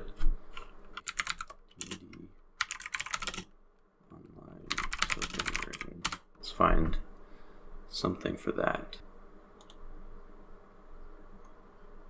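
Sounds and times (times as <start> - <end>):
typing on computer keyboard: 1.0 - 3.4, 4.7 - 6.3.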